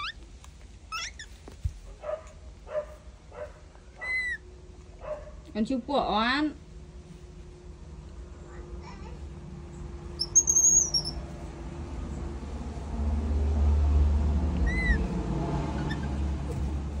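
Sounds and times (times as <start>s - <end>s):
animal chirp: 0.0s - 0.2s, 0.9s - 1.3s, 3.9s - 4.4s, 10.2s - 11.2s, 14.6s - 15.1s, 15.7s - 16.3s
squeaky animal whistle: 10.2s - 11.2s.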